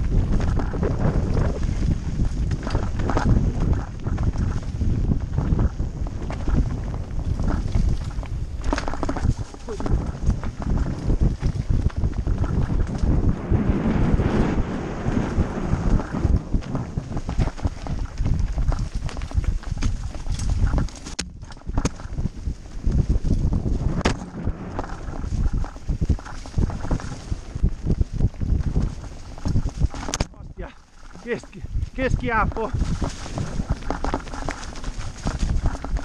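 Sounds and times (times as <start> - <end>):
mountain bike rattling over stones: 0.0 - 36.0
wind buffeting microphone: 0.0 - 36.0
tyres crunching on stones: 5.4 - 36.0.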